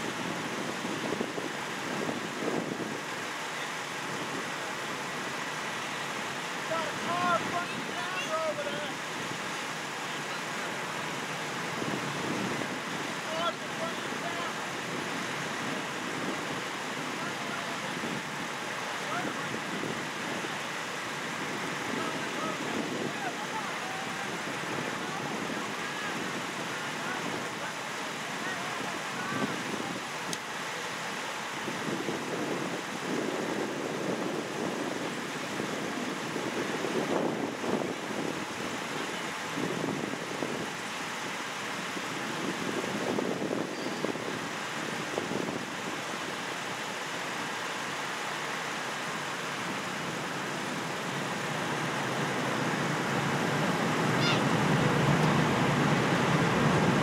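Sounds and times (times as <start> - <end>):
wind on microphone: 0.0 - 57.0
road noise: 46.7 - 57.0.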